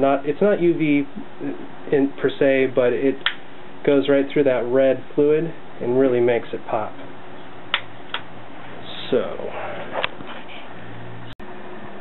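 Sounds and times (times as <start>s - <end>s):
cooling fans humming: 0.0s - 12.0s.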